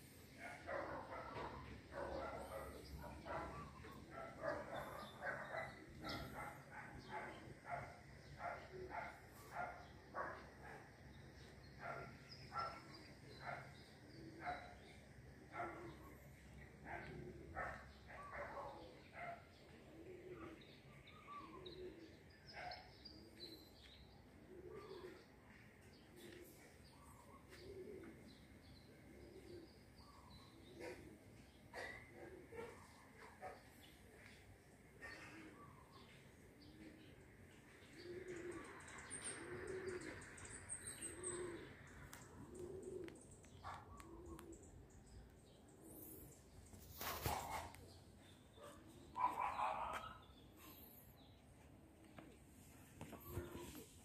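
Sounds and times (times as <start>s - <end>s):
birds warbling: 0.1s - 23.4s, 26.1s - 33.6s, 38.0s - 51.4s
dove cooing: 0.2s - 50.9s, 51.6s - 54.0s.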